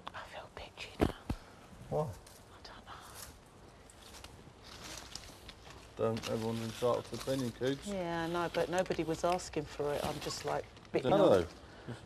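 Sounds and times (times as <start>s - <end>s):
soft whispered speech: 2.5s - 3.3s.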